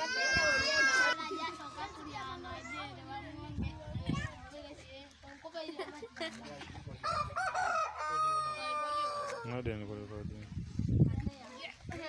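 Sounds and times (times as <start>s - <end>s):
rooster crowing: 7.0s - 9.5s.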